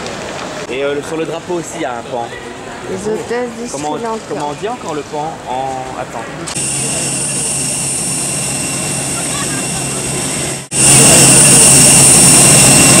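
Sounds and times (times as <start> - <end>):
jet turbine whine: 6.5 - 13.0
low hum: 6.6 - 13.0.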